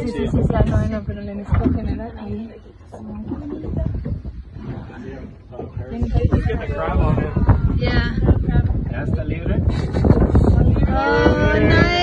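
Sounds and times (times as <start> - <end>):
wind noise: 0.0 - 12.0.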